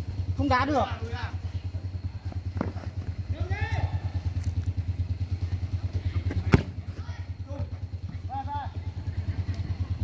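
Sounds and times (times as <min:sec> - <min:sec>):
low pulsing hum: 0:00.0 - 0:10.0
football kicked hard: 0:06.2 - 0:07.0.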